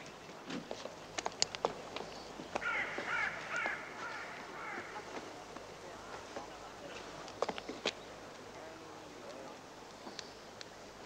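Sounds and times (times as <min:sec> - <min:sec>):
crows cawing: 0:02.6 - 0:05.1.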